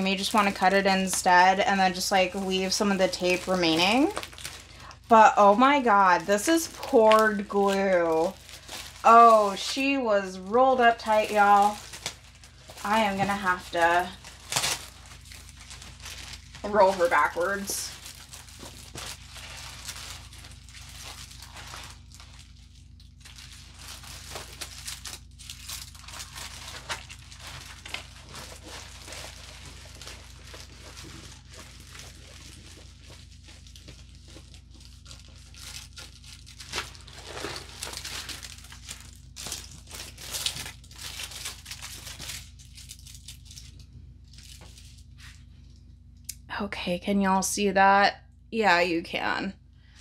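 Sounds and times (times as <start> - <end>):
plastic and paper crinkling: 0.0 - 45.8
steady low hum: 0.0 - 50.0.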